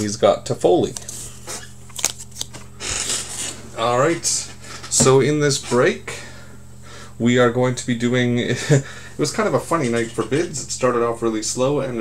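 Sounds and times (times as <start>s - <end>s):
steady low hum: 0.0s - 12.0s
cards being shuffled: 0.9s - 3.6s.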